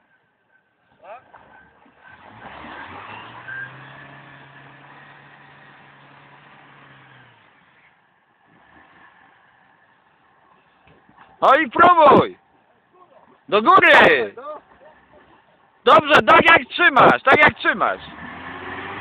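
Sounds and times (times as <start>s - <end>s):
car engine revving: 1.4s - 9.9s, 17.5s - 19.0s.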